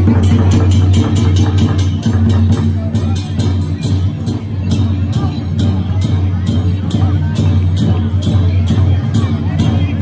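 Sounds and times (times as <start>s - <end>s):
cymbals clashing: 0.0s - 10.0s
drum beating steadily: 0.0s - 10.0s.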